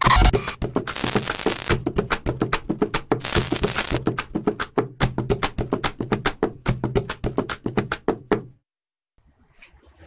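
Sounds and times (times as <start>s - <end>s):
rhythmic percussion music: 0.3s - 8.4s.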